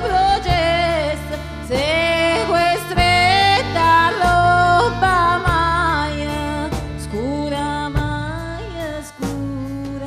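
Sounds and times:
accordion melody: 0.0s - 10.0s
bass guitar line: 0.0s - 10.0s.

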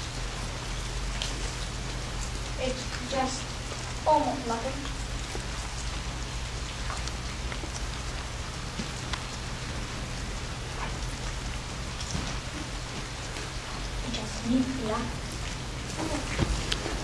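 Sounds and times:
campfire crackling and popping: 0.1s - 17.0s.

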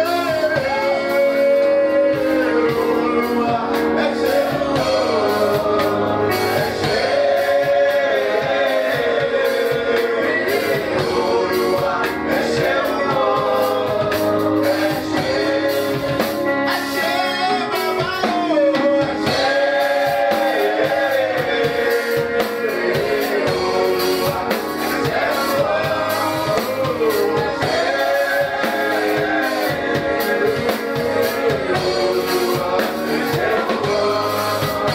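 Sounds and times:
man singing into microphone: 0.0s - 7.9s, 9.5s - 20.6s, 21.3s - 34.9s
instrumental backing: 0.0s - 34.9s.

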